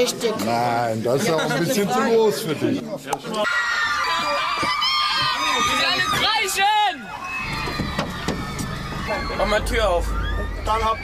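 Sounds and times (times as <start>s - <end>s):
mix of voices: 0.0s - 11.0s
low rumble: 7.2s - 11.0s.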